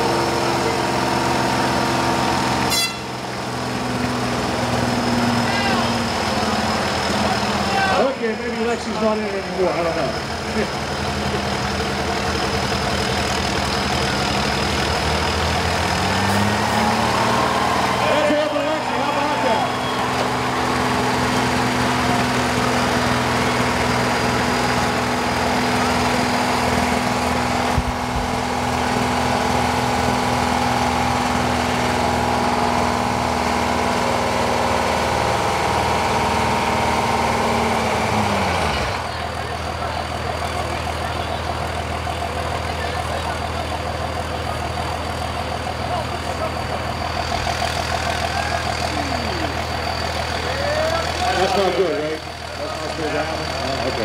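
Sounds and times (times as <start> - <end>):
bus engine running: 0.0 - 54.0
engine idling: 0.0 - 54.0.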